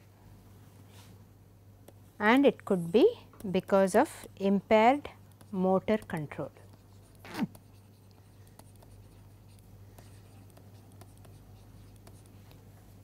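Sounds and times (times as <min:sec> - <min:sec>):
steady low hum: 0:00.0 - 0:13.0
stylus scratching tablet screen: 0:05.0 - 0:12.6.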